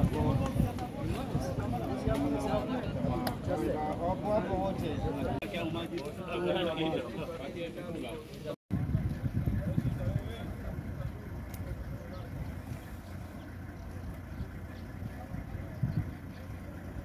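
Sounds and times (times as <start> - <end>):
low uneven rumble: 0.0 - 17.0
people talking: 0.0 - 17.0.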